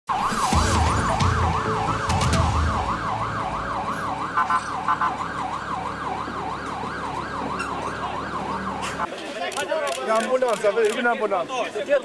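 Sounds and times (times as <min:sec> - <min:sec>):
siren yelping: 0:00.1 - 0:09.1.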